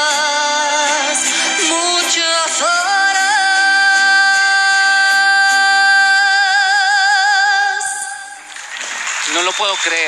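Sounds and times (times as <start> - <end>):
applause: 8.4 - 10.0.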